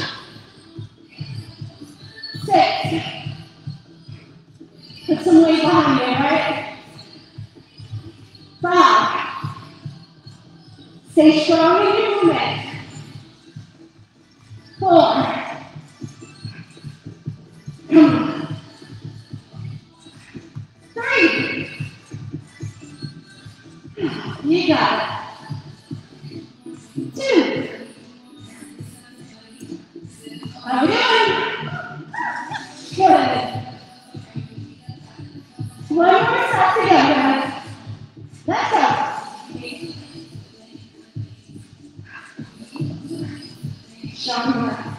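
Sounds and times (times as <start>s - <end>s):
background music with low beat: 0.0s - 44.9s.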